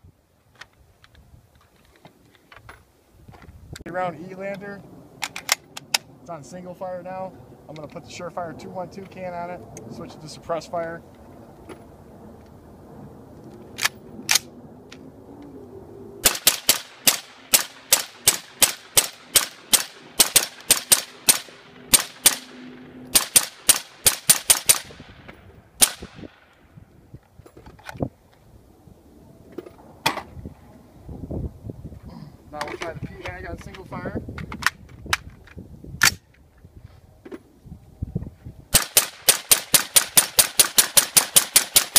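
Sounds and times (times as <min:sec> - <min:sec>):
sharp cracks: 0:13.7 - 0:15.0, 0:16.2 - 0:26.7, 0:38.7 - 0:41.9
suppressed rifle shots: 0:16.2 - 0:25.2, 0:25.8 - 0:26.5, 0:38.7 - 0:41.9.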